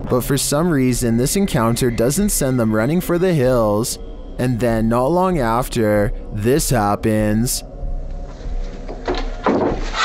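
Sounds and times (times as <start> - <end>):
low steady drone: 0.0 - 10.0.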